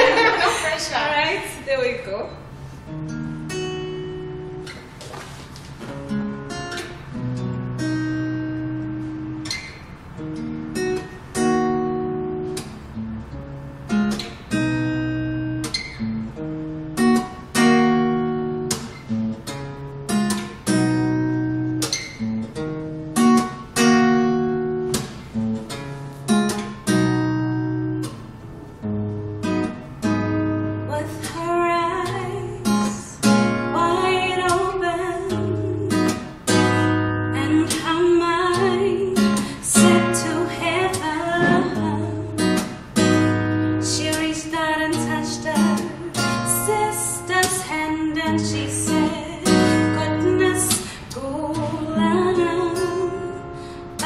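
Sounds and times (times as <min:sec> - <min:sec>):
acoustic guitar chords: 0:02.0 - 0:54.0
woman singing: 0:30.9 - 0:42.7, 0:43.8 - 0:54.0.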